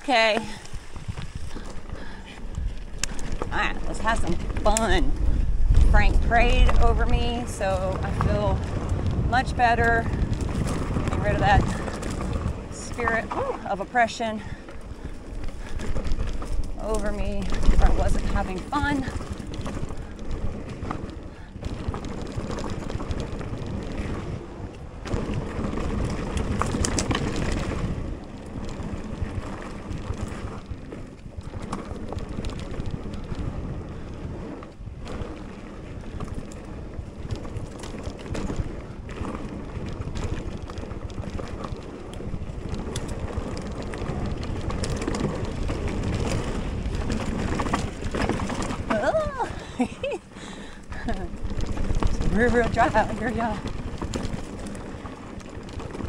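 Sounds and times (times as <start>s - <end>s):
bike tyres on dirt trail: 0.0s - 56.0s
wind on microphone: 0.0s - 56.0s.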